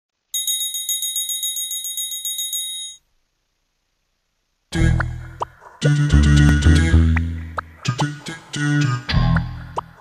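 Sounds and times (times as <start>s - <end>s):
small metal bell rung rapidly: 0.4s - 3.0s.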